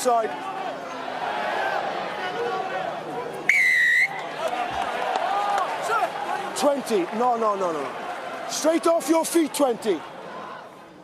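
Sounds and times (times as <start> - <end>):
referee's whistle blast: 3.5 - 4.2.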